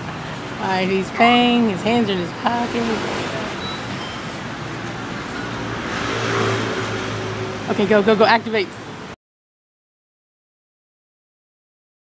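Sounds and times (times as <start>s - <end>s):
steady low traffic hum: 0.0s - 9.2s
vehicle passing: 0.1s - 9.2s.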